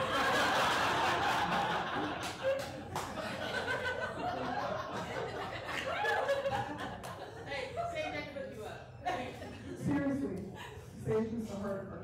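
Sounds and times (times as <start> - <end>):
audience laughing: 0.0 - 7.6.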